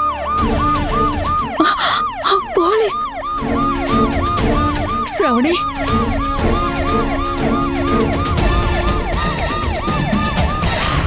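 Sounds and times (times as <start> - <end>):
background music: 0.0 - 11.0
police siren yelping: 0.0 - 11.0.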